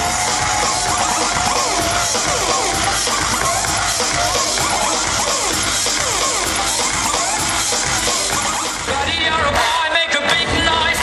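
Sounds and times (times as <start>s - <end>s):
crowd noise: 0.0s - 11.0s
electronic dance music: 0.0s - 11.0s.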